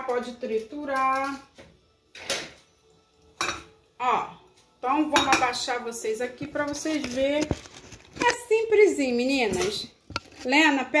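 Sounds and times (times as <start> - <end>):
kitchen items handled on counter: 0.0 - 2.7, 4.6 - 11.0.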